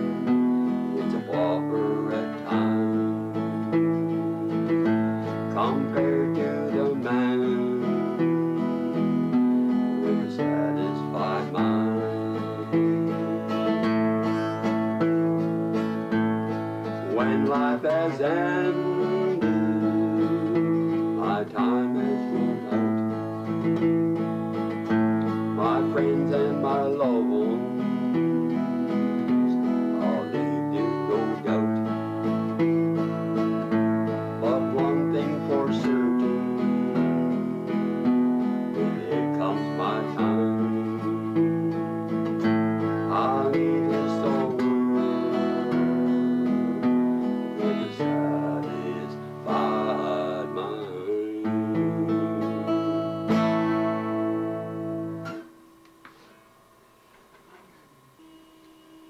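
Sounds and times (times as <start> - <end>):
man singing: 0.0 - 15.1, 16.6 - 23.8, 25.2 - 55.5
acoustic guitar strumming: 0.0 - 59.0.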